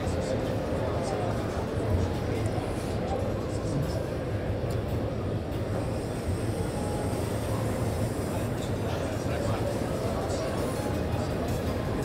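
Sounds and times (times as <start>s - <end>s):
hazy murmur of voices: 0.0s - 12.0s.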